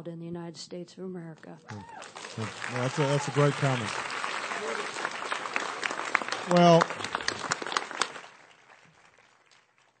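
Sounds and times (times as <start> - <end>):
audience applause: 1.7 - 10.0.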